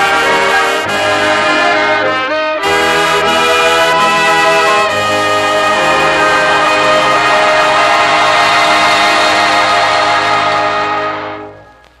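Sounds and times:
dance orchestra held chord: 0.0 - 12.0.

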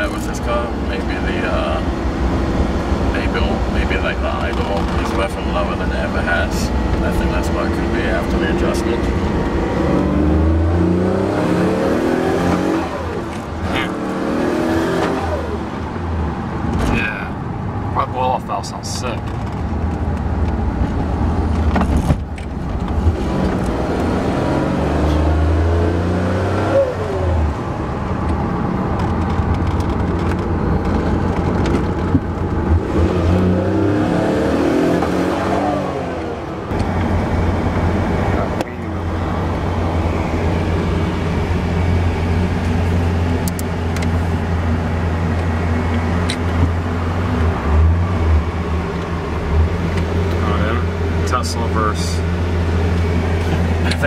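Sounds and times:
car engine accelerating: 0.0 - 18.0, 19.1 - 54.0.

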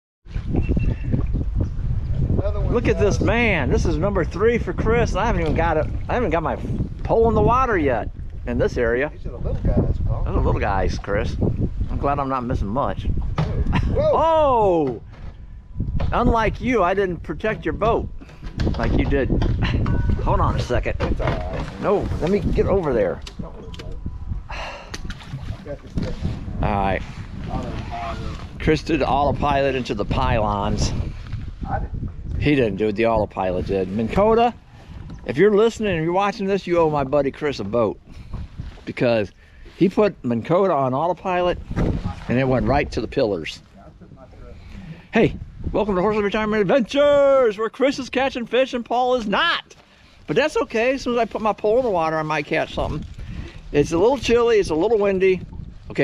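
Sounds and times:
wind rumble on microphone: 0.2 - 48.4, 50.1 - 56.0
breathy exhale: 24.5 - 25.0, 44.6 - 45.1.

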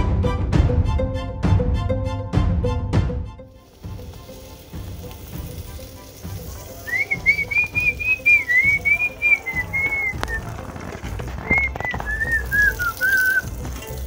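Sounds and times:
person whistling a tune: 6.8 - 10.5, 11.4 - 13.6.

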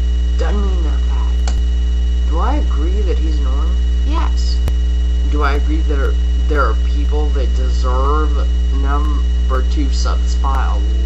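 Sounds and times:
electrical mains hum: 0.0 - 11.0
sharp click: 1.4 - 1.6.

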